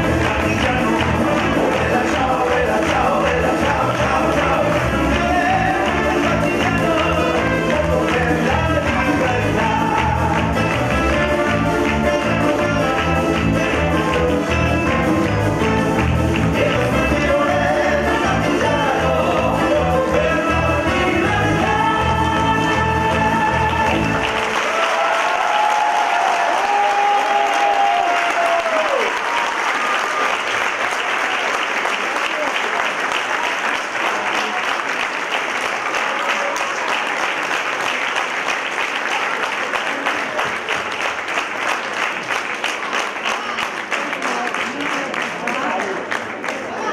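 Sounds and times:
dance music: 0:00.0 - 0:24.7
audience applauding: 0:00.0 - 0:46.9.

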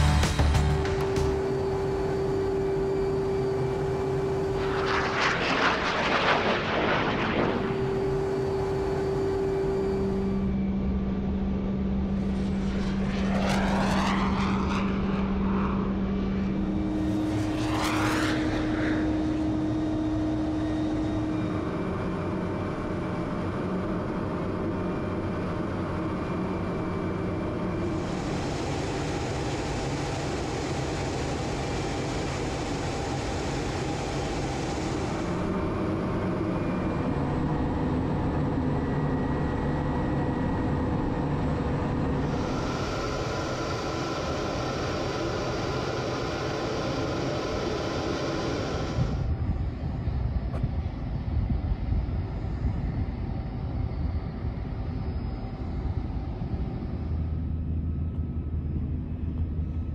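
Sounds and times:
jet cockpit noise: 0:00.0 - 0:51.0
electronic tone: 0:07.2 - 0:10.7.

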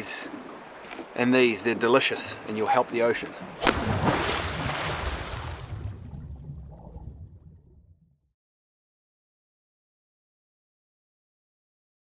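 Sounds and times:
low rumble: 0:05.0 - 0:08.3.

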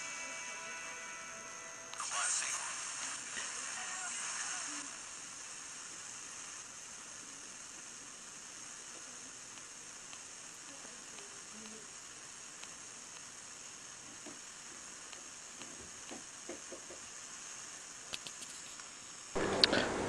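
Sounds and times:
radio station music: 0:00.0 - 0:06.7
burst of radio tuning noise: 0:00.0 - 0:18.0, 0:18.9 - 0:20.0
radio static hiss: 0:00.0 - 0:20.0.

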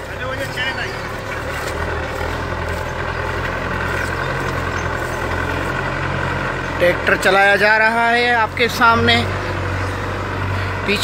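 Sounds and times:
tractor engine under load: 0:00.0 - 0:11.0.

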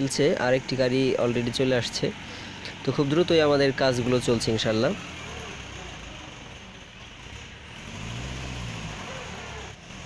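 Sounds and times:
tractor engine idling: 0:00.0 - 0:10.0.

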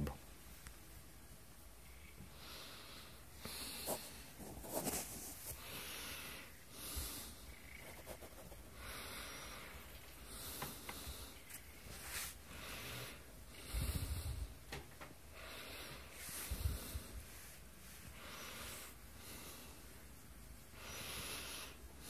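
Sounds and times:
slow breathing: 0:05.5 - 0:07.7, 0:08.7 - 0:14.6, 0:15.2 - 0:22.0.

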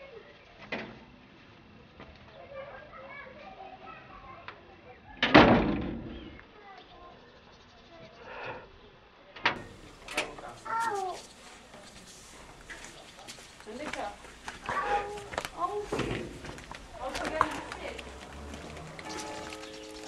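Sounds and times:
glass door banging shut: 0:05.2 - 0:06.1, 0:15.9 - 0:16.4
faint voices: 0:06.4 - 0:20.0
person calling: 0:09.7 - 0:12.0, 0:14.6 - 0:16.0.

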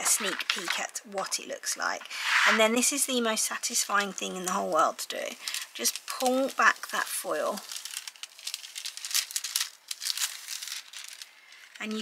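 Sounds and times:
foil and plastic crinkling: 0:03.5 - 0:12.0.

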